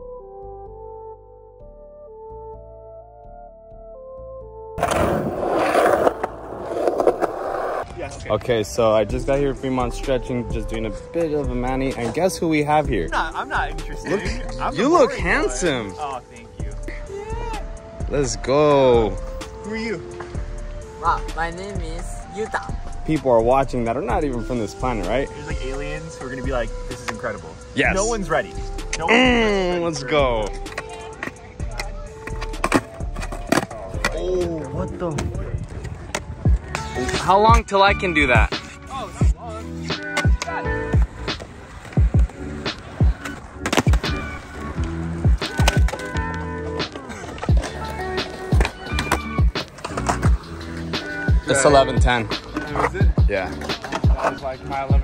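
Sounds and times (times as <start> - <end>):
background music: 0.0 - 55.0
skateboard clacks on concrete: 4.8 - 7.9, 30.6 - 34.2, 39.9 - 50.8
skateboard wheels rolling on concrete: 4.8 - 55.0.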